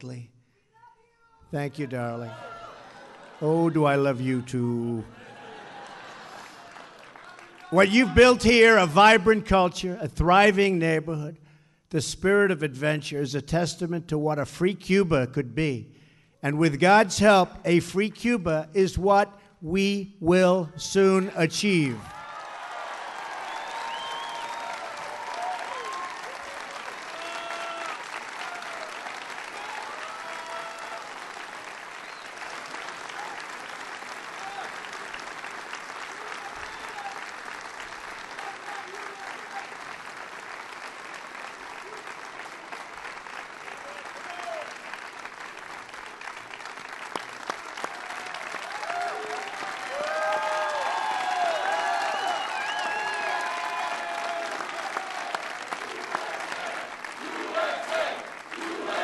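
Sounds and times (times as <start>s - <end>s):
crowd applauding: 2.0s - 8.9s, 22.1s - 59.0s.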